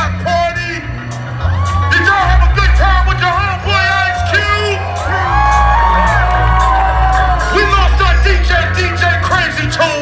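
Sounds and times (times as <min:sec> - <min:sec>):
live hip-hop music with heavy bass: 0:00.0 - 0:10.0
crowd whooping: 0:01.3 - 0:02.4, 0:03.6 - 0:08.3.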